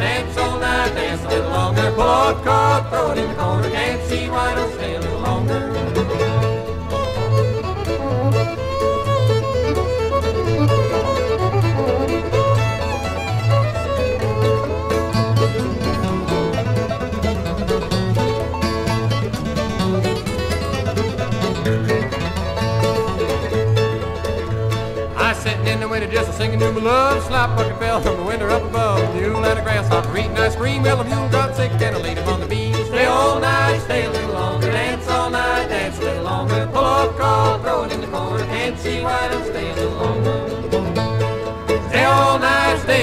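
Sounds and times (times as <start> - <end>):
person singing: 0.0 - 6.0
bluegrass fiddle banjo and guitar: 0.0 - 43.0.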